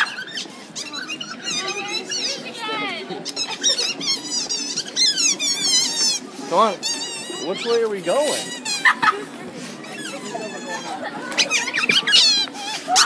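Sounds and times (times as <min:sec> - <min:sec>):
voices chattering: 0:00.0 - 0:13.0.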